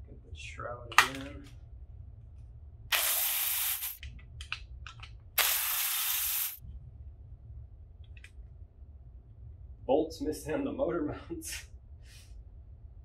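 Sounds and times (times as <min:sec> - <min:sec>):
spray bursts hissing: 0:02.9 - 0:04.0, 0:05.4 - 0:06.6.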